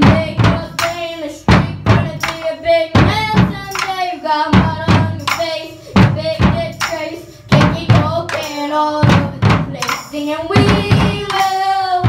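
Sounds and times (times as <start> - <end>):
drums struck hard: 0.0 - 12.0
girls singing together: 0.0 - 12.0.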